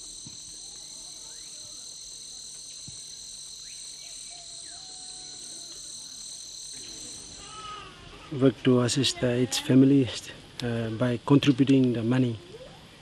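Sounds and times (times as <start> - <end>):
insects chorus: 0.0 - 13.0.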